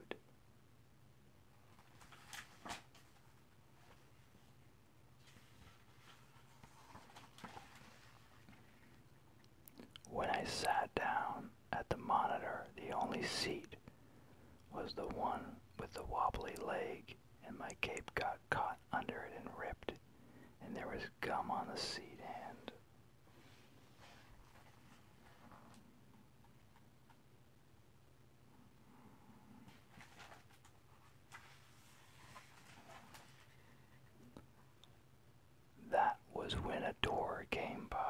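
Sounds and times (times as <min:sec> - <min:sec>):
close-up whispering: 0:00.0 - 0:00.2, 0:09.7 - 0:13.8, 0:14.7 - 0:20.0, 0:20.6 - 0:22.8, 0:35.8 - 0:38.0
book page turning: 0:01.8 - 0:03.3, 0:29.6 - 0:33.6.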